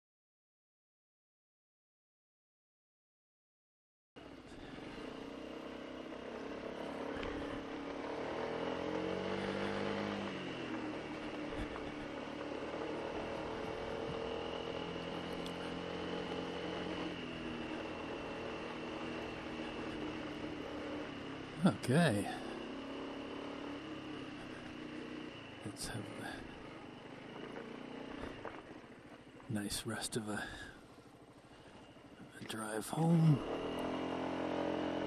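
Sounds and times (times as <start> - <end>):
scooter engine running: 4.2 - 35.0
wind and road noise: 4.2 - 35.0.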